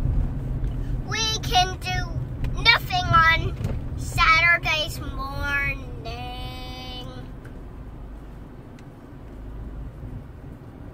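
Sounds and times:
car cabin rumble: 0.0s - 10.9s
young child singing: 1.0s - 7.3s.

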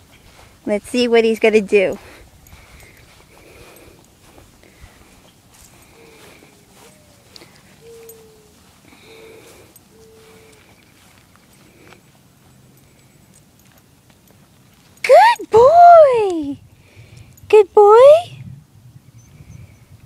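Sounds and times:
faint soft sounds: 0.0s - 18.5s.

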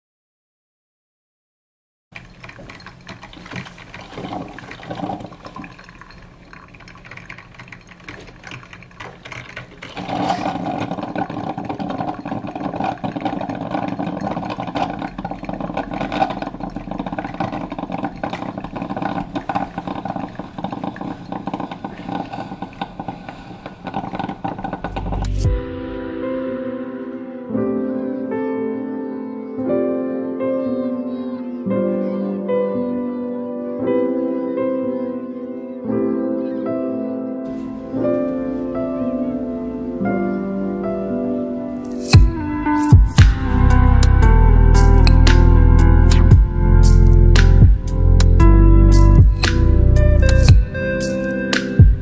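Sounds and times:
drip coffee maker brewing: 2.2s - 25.6s
soft piano music: 25.0s - 52.0s.

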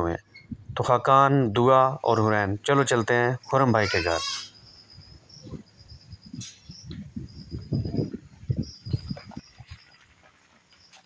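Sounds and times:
insects droning: 0.0s - 11.0s.

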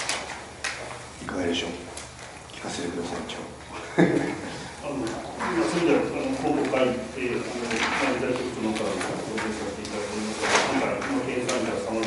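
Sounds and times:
person speaking: 4.4s - 12.0s.

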